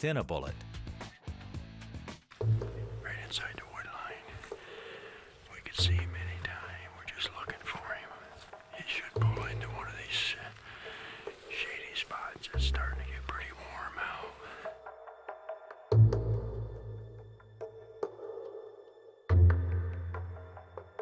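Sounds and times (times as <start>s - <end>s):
deep pulsing background music: 0.6s - 11.6s, 12.2s - 21.0s
man whispering: 2.6s - 14.8s.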